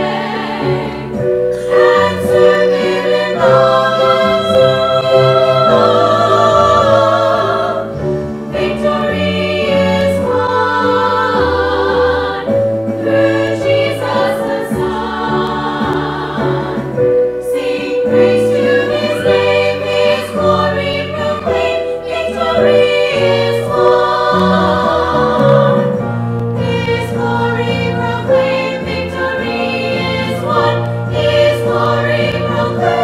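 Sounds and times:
instrumental accompaniment low notes: 0.0s - 33.0s
women singing a hymn: 0.0s - 33.0s.

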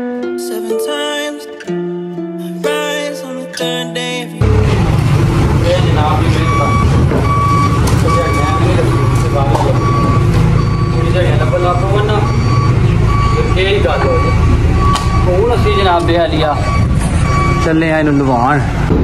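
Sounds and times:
diesel engine running: 4.4s - 19.0s
reversing alarm beeping: 5.6s - 18.3s.

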